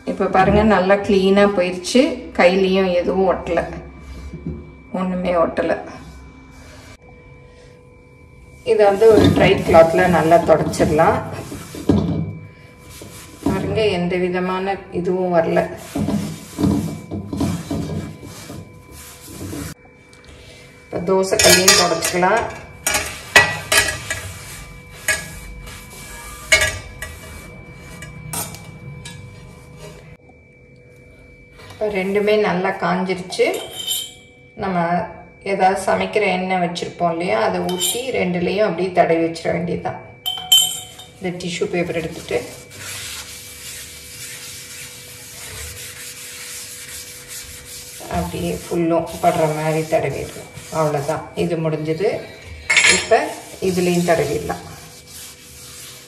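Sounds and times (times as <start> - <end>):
cloth wiping inside iron pan: 8.7 - 14.2, 15.2 - 19.8, 21.4 - 28.2, 40.5 - 56.0.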